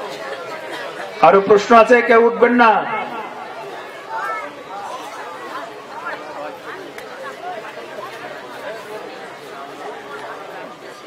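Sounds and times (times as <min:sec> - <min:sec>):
audience murmur: 0:00.0 - 0:01.6, 0:02.7 - 0:11.0.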